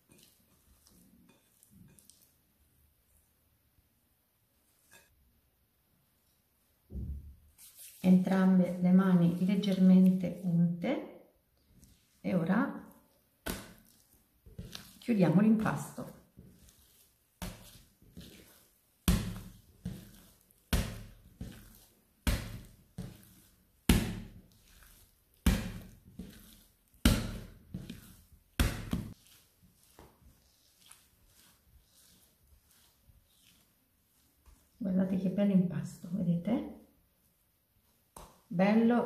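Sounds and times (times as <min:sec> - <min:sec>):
faint dough handling sounds: 0:00.0 - 0:39.0
dough slapping on steel surface: 0:11.7 - 0:34.9, 0:38.0 - 0:38.6.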